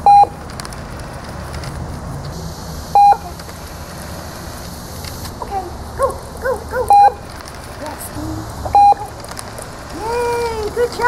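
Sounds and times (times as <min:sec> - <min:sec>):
treat dispenser beeping: 0:00.0 - 0:00.4, 0:03.0 - 0:03.2, 0:08.7 - 0:09.0.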